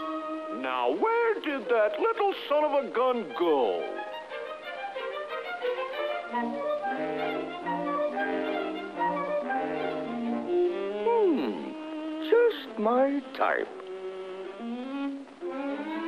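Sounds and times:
low string notes: 0.0 - 16.0
orchestral strings melody: 0.0 - 16.0.

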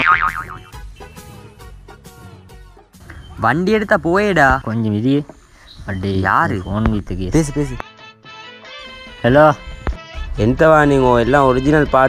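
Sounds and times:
background music: 0.0 - 5.2, 6.0 - 12.0.

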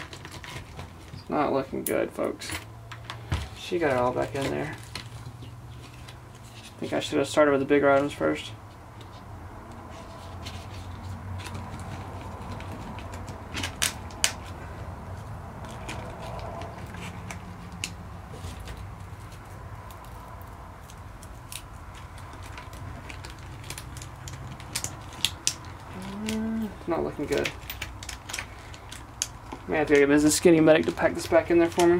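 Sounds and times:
small items clicking and knocking: 15.6 - 30.1.

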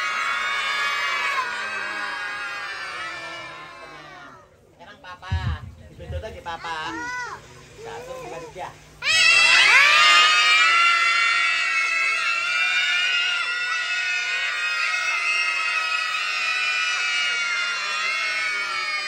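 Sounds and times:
children screaming: 0.0 - 4.6, 6.6 - 19.0.

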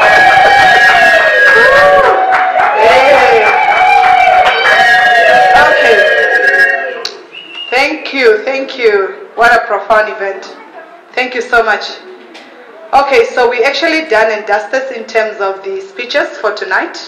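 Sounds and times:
woman speaking over public address: 7.7 - 12.2, 12.9 - 17.0.

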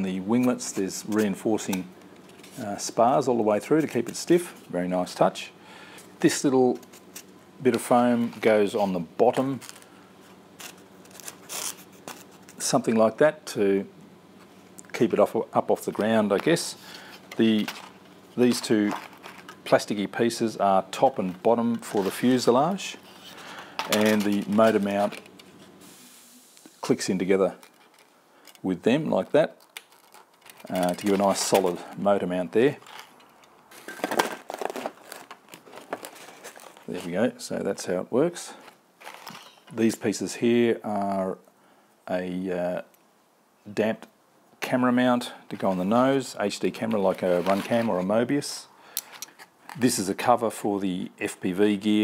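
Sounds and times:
foam crinkles: 7.8 - 12.8, 15.9 - 19.8, 26.8 - 37.3
foam rubbing and scuffing: 47.1 - 48.1.

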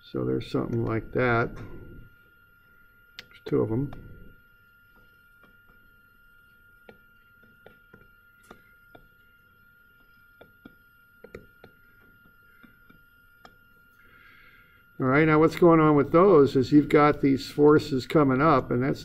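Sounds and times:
faint high whine: 0.0 - 19.0
stylus tapping on tablet screen: 6.8 - 9.1, 10.0 - 13.6.

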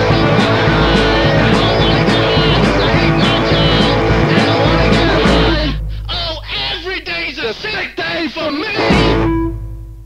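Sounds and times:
rock band playing loud: 0.0 - 5.9, 8.7 - 9.7
drum and cymbal strokes: 0.0 - 6.0
distorted electric guitars: 0.0 - 6.8, 7.5 - 10.0.

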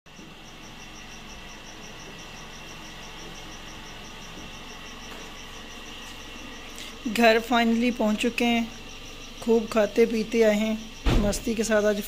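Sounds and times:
crickets chirping: 0.1 - 12.0.

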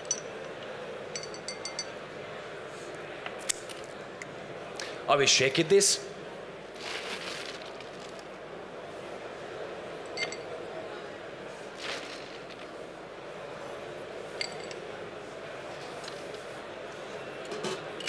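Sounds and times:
hall background noise: 0.0 - 18.0
cocktail shaker and glassware clinks: 1.1 - 2.0.

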